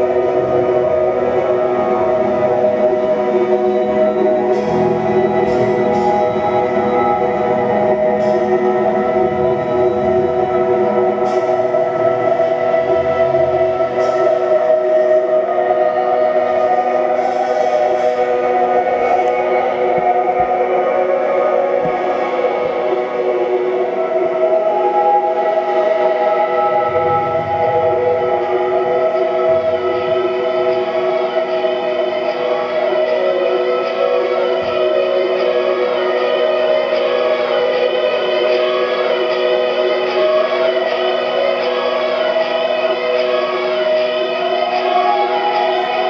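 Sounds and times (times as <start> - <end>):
keyboard and guitar drone: 0.0 - 46.0.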